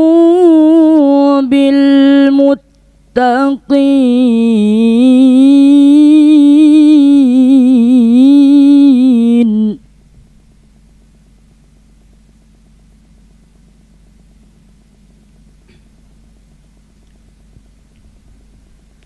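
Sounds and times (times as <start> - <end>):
boy reciting melodically: 0.0 - 9.8.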